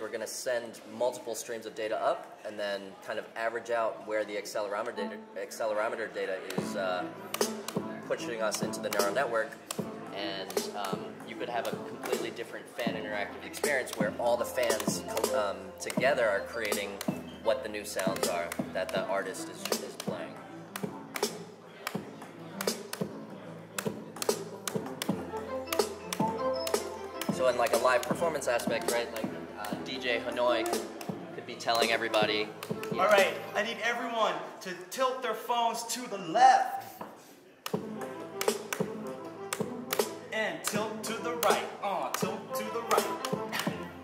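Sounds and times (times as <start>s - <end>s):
electronic drum beat: 13.6s - 17.2s
gliding synth pitches: 25.1s - 28.8s.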